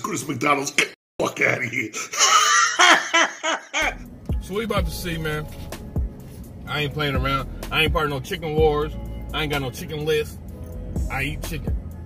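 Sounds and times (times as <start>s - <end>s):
man laughing hard: 2.1s - 4.0s.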